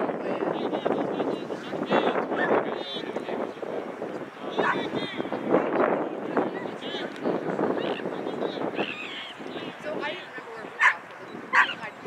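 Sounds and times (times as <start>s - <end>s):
faint background voices: 0.0s - 12.0s
dog barking: 10.8s - 11.8s.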